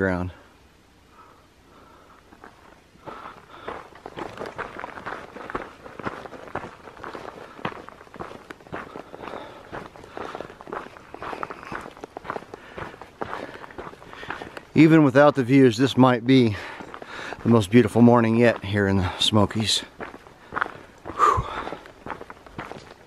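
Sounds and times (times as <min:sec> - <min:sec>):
footsteps on gravel trail: 0:01.8 - 0:23.0.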